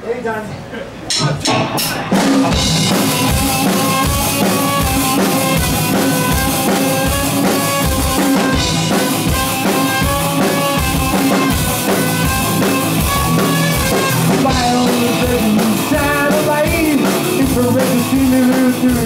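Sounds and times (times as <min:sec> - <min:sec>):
rock band playing: 0:01.1 - 0:19.0
bass drum beat: 0:01.4 - 0:19.0
trumpet melody: 0:03.0 - 0:15.6.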